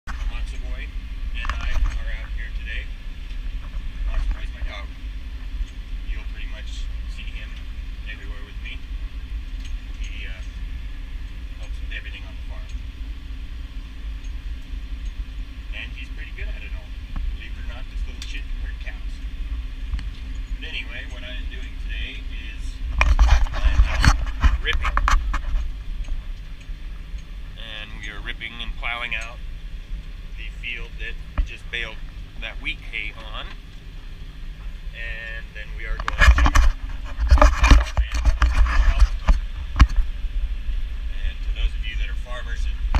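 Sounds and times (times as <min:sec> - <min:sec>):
rattling noise: 0:00.1 - 0:13.0, 0:13.6 - 0:42.9.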